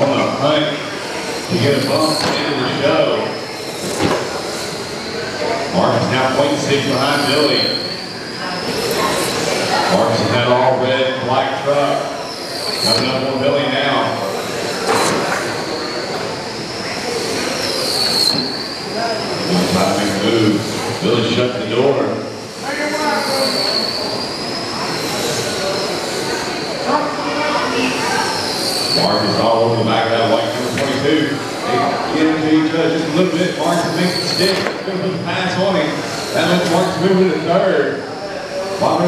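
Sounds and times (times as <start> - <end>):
rc truck motors whining: 0.4 - 10.6, 12.0 - 39.0.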